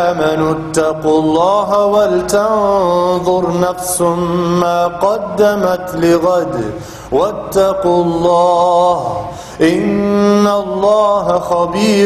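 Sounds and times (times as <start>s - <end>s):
man chanting melodic recitation: 0.0s - 12.0s.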